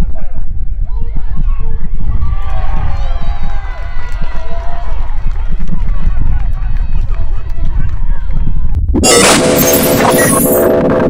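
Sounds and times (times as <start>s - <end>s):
wind buffeting microphone: 0.0s - 8.9s.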